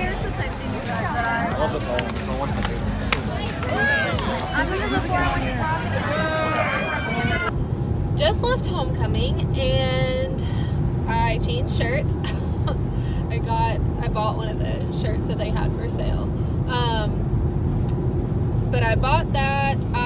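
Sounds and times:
car cabin road noise: 0.0s - 20.0s
woman talking: 4.4s - 6.4s, 8.2s - 17.2s, 18.7s - 20.0s.

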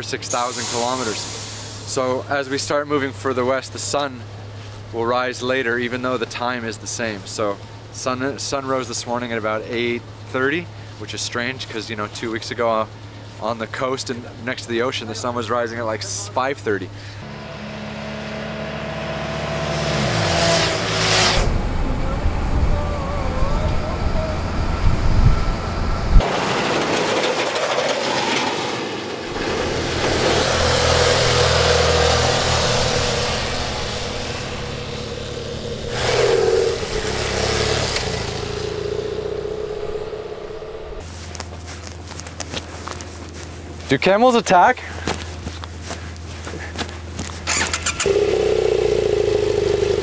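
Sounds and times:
truck passing: 16.9s - 41.8s, 47.0s - 50.0s
vehicle passing: 29.2s - 41.0s.

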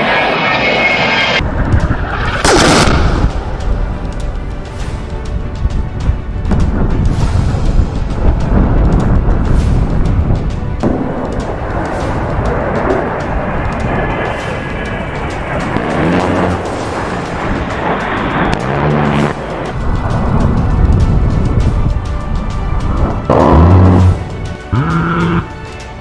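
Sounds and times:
jet engines roaring: 0.0s - 5.4s, 6.1s - 26.0s
background music: 1.4s - 26.0s.

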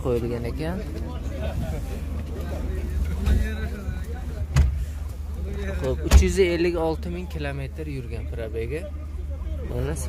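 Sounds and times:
faint voices: 0.0s - 10.0s
low rumble inside van cab: 0.0s - 10.0s.

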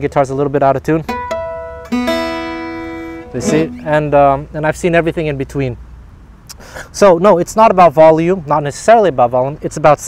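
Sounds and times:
jazz guitar picked: 1.1s - 4.5s.

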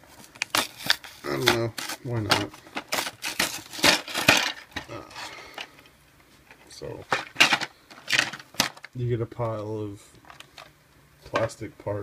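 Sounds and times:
plastic packaging crinkling: 0.0s - 5.8s, 7.0s - 9.1s.

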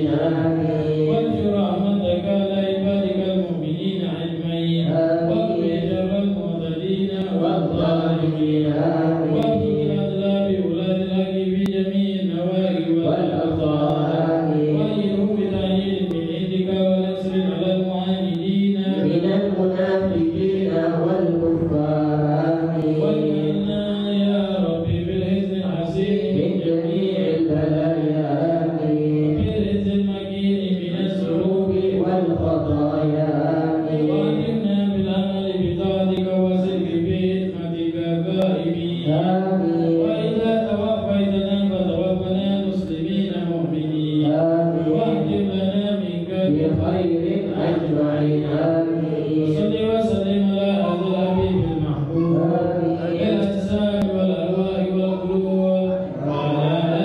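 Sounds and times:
men chanting together: 0.0s - 57.0s.

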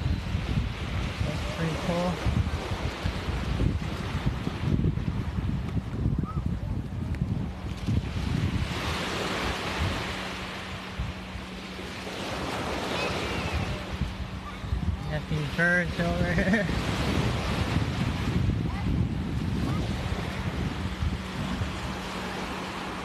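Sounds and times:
small surf breaking on sand: 0.0s - 5.9s
wind buffeting microphone: 0.0s - 23.0s.

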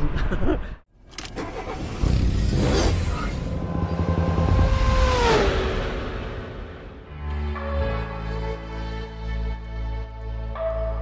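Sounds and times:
car engine rumbling and revving: 1.2s - 7.1s.

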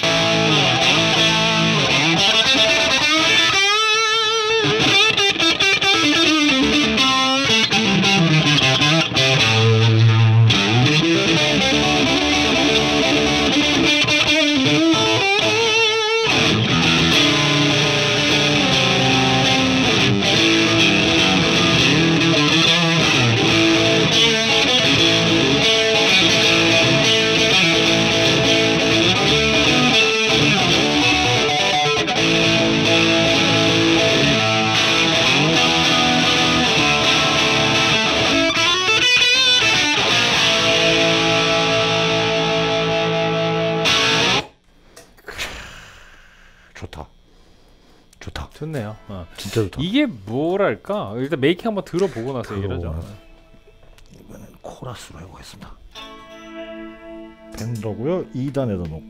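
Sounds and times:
distorted electric guitar: 0.0s - 45.7s, 55.8s - 59.0s.

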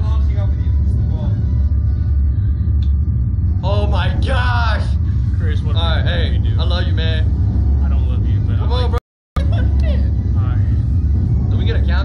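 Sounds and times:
ride machinery low rumble: 0.0s - 12.0s.

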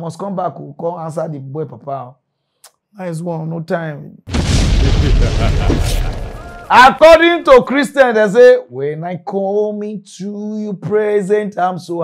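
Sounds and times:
deep rumbling boom: 4.3s - 6.8s.

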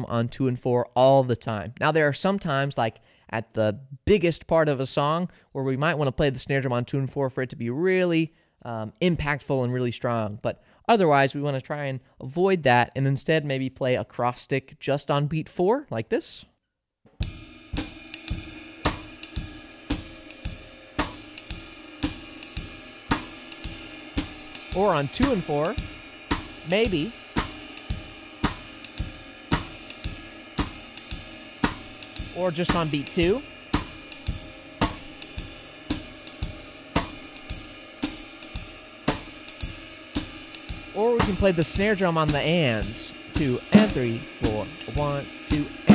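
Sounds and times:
drum kit playing jazz swing: 17.2s - 45.9s
hi-hat: 17.2s - 45.9s
ride cymbal pattern: 17.2s - 45.9s.

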